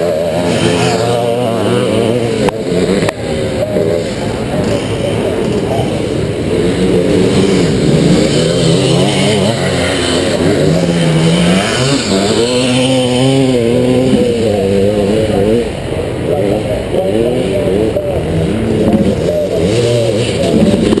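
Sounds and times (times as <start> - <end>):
two-stroke engine revving: 0.0 - 21.0.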